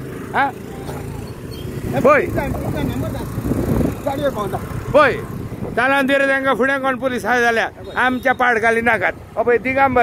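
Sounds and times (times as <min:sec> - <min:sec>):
vehicle road noise: 0:00.0 - 0:10.0.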